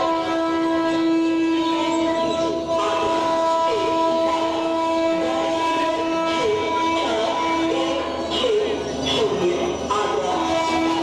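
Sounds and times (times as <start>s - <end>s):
electronic drone chord: 0.0s - 11.0s.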